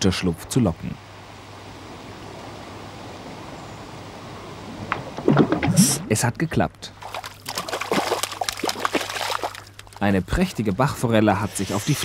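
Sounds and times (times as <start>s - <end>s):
water splashing in a stream: 7.0s - 10.0s.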